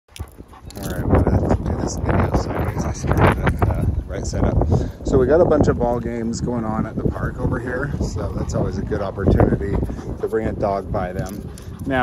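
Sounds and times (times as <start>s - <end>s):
wind rumble on microphone: 0.1s - 12.0s
man talking: 0.7s - 12.0s.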